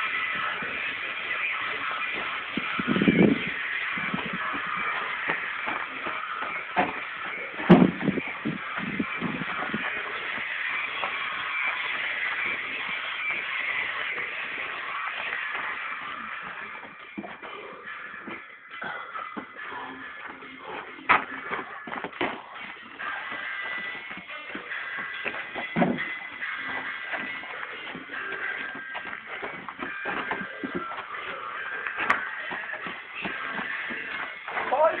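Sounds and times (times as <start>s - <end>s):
music playing: 0.0s - 35.0s
scuffing footsteps: 0.0s - 35.0s
knocks: 7.6s - 8.1s.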